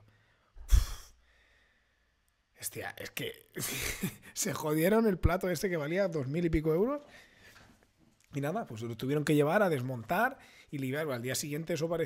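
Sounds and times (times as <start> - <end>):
loud exhale into microphone: 0.6 - 1.5.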